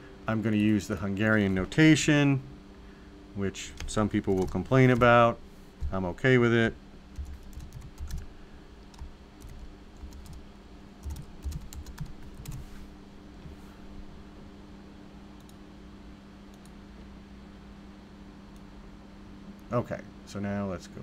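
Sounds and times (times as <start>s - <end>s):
steady low hum: 0.0s - 21.0s
computer keyboard typing: 3.8s - 5.2s, 7.2s - 8.3s, 8.9s - 10.4s, 11.0s - 12.6s.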